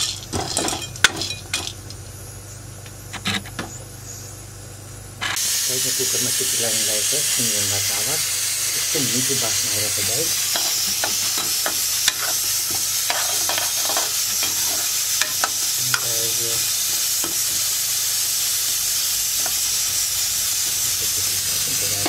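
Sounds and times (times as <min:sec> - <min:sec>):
corn kernels sizzling in pan: 0:00.0 - 0:02.2, 0:05.2 - 0:22.0
ladle scraping pan: 0:10.4 - 0:16.0.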